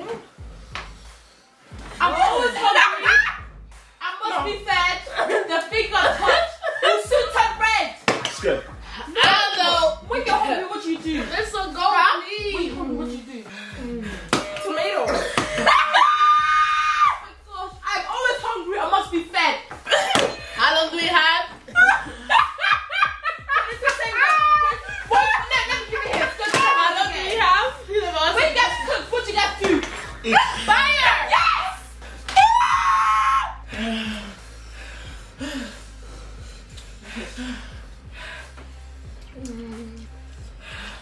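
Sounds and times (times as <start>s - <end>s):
excited voices: 2.0s - 34.5s
woman screaming: 2.2s - 3.4s, 15.1s - 17.6s, 30.3s - 33.6s.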